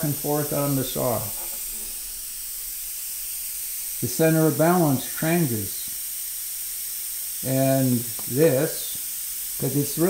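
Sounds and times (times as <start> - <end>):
steady high-pitched hiss: 0.0 - 10.0.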